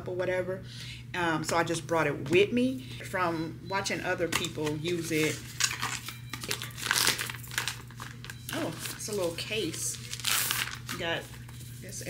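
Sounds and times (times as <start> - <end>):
plastic packaging crinkling: 5.1 - 11.6.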